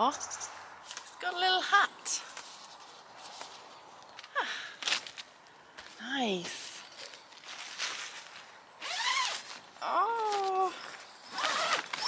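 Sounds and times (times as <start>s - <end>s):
zip pulled: 8.8s - 9.6s, 11.2s - 12.0s.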